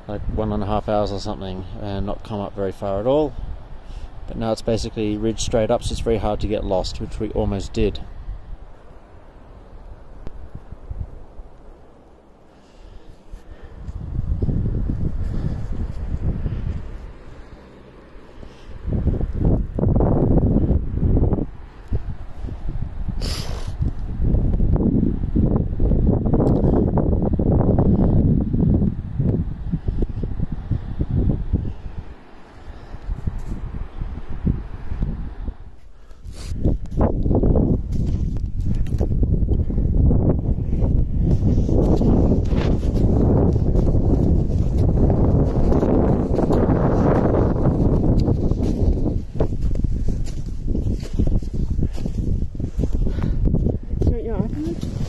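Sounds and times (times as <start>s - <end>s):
gusty wind on microphone: 0.0s - 55.0s
footsteps on snow and rock: 14.9s - 18.7s, 35.8s - 39.2s, 40.7s - 55.0s.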